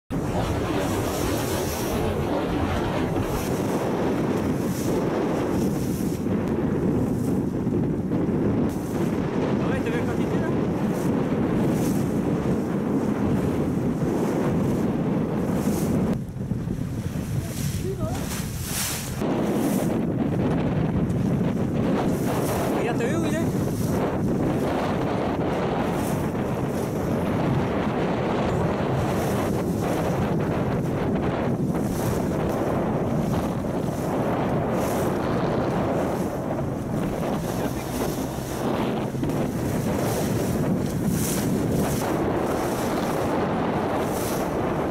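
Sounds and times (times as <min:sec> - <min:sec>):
waves washing: 0:00.1 - 0:07.7, 0:08.6 - 0:44.9
wind buffeting microphone: 0:00.1 - 0:44.9.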